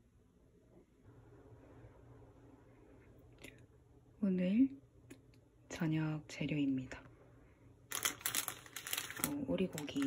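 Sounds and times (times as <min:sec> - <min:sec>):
plastic bag crinkling: 0:07.9 - 0:10.0.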